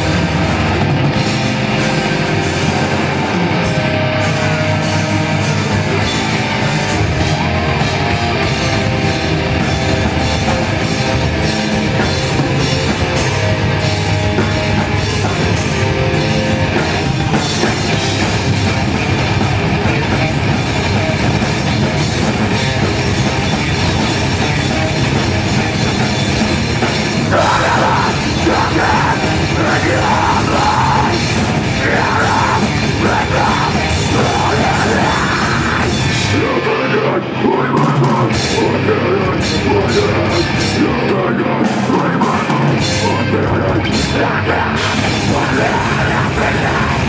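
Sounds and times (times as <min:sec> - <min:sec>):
distorted electric guitars: 0:00.0 - 0:47.0
metal band playing: 0:00.0 - 0:47.0
pounding drum kit: 0:00.0 - 0:47.0.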